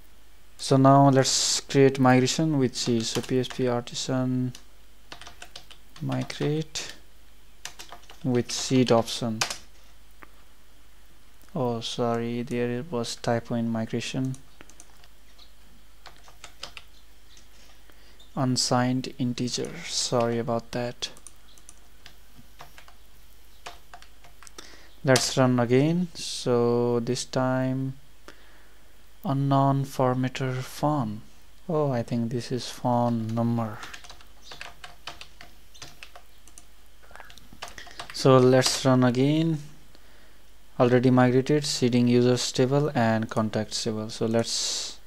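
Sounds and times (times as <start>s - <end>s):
computer keyboard typing: 2.8s - 3.7s, 4.5s - 7.0s, 7.6s - 8.6s, 9.4s - 9.7s, 14.2s - 17.5s, 21.0s - 23.0s, 23.6s - 24.6s, 33.1s - 38.8s.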